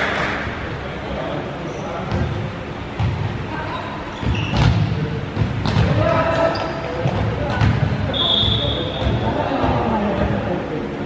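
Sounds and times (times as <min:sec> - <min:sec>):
volleyball slaps: 0:04.2 - 0:10.4.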